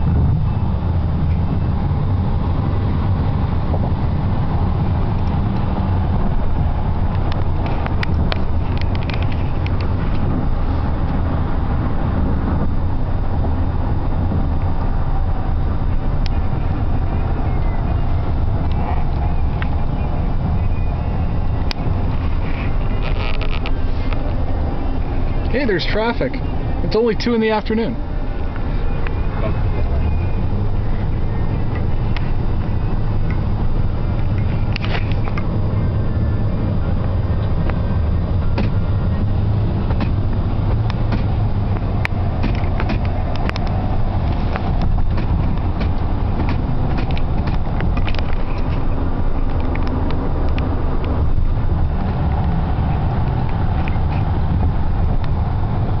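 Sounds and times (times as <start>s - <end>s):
road and engine rumble: 0.0s - 56.0s.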